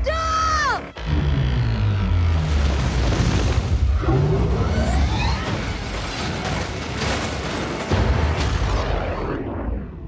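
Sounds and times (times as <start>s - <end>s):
large explosion rumble with debris: 2.2s - 10.0s.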